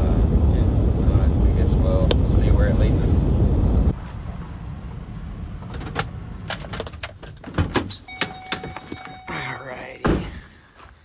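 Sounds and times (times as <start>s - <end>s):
van engine rumble: 0.0s - 9.3s
car door opening: 5.6s - 9.3s
keys jingling: 5.8s - 9.3s
high warning tone: 7.9s - 10.0s.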